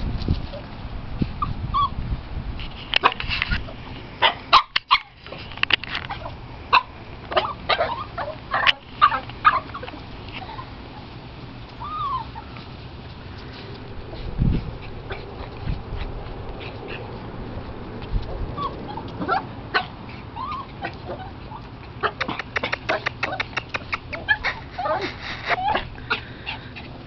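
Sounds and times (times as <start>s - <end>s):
dog whimpers and yips: 1.4s - 2.0s, 6.0s - 11.1s, 11.7s - 12.7s, 18.5s - 27.0s
dogs scuffling on dry grass: 2.6s - 22.0s, 23.9s - 27.0s
dull low bumps: 12.7s - 19.3s.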